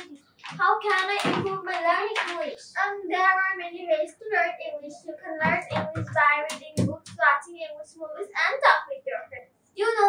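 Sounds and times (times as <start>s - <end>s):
girl speaking: 0.0s - 10.0s.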